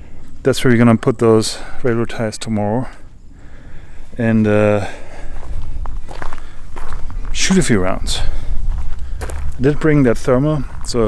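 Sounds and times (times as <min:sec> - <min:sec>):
footsteps on grass and dirt: 0:03.9 - 0:11.0.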